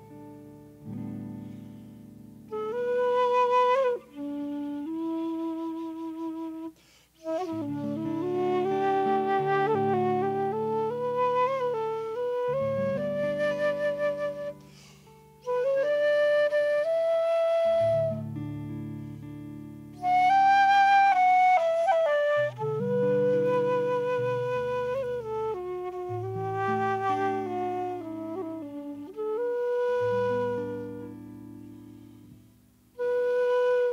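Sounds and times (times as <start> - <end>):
flute playing slow air: 0.0 - 33.9.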